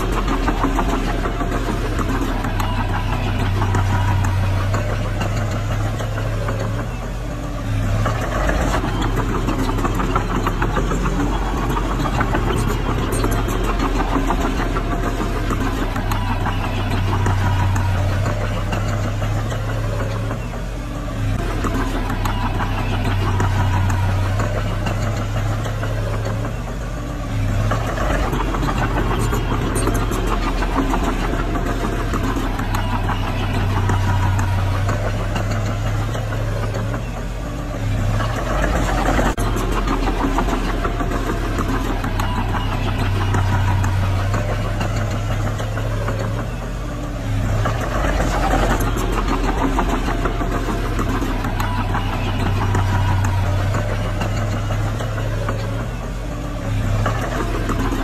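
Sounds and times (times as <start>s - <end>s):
bulldozer diesel engine clatter: 0.0s - 58.0s.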